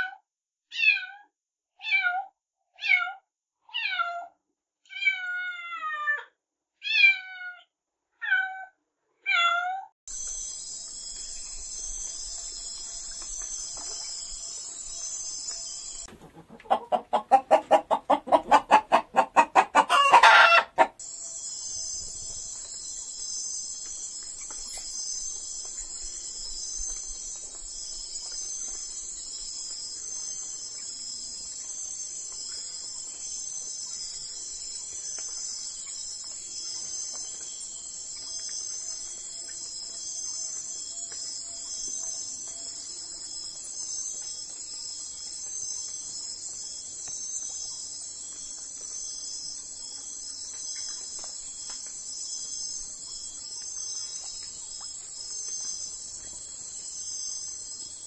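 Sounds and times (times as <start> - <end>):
insects chorus pulsing: 10.1 - 58.0.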